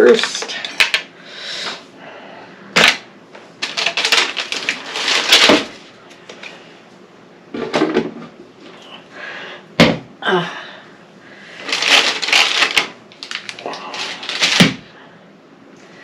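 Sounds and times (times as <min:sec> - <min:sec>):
plastic pieces clicking and clattering: 0:03.6 - 0:05.9, 0:11.6 - 0:14.8.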